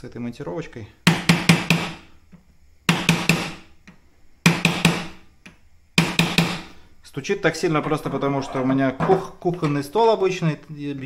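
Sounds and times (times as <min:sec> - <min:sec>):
objects rattling on table: 0:07.7 - 0:09.7.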